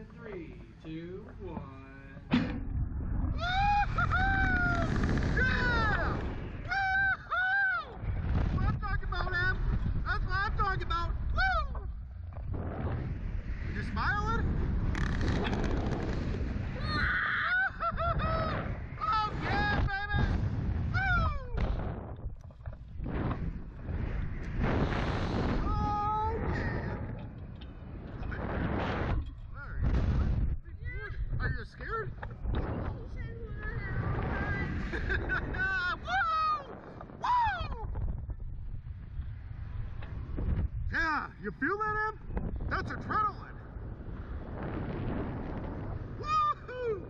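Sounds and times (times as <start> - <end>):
wind buffeting microphone: 0.0 - 47.0
riders screaming: 3.3 - 8.3, 15.2 - 21.6.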